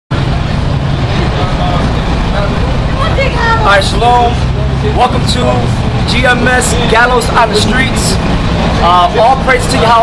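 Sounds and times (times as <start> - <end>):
faint voices of passers-by: 0.1 - 10.0
traffic rumble: 0.1 - 10.0.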